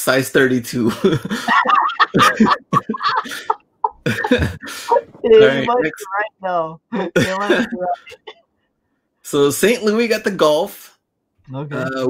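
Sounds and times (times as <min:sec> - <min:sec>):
men laughing: 0:00.7 - 0:06.1, 0:06.9 - 0:08.4.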